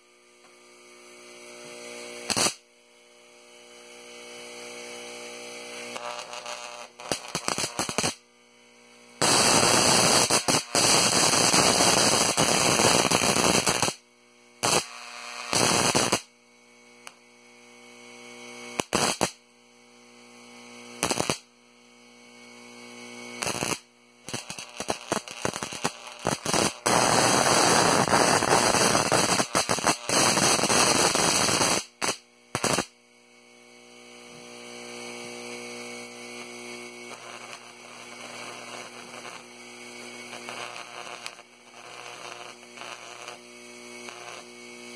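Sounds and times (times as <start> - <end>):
electrical hum: 0.0 - 44.9
high-voltage arc crackling: 1.8 - 2.7, 3.5 - 8.3, 9.2 - 14.0, 14.6 - 16.3, 18.5 - 19.4, 20.8 - 21.5, 23.2 - 33.0, 34.0 - 44.9.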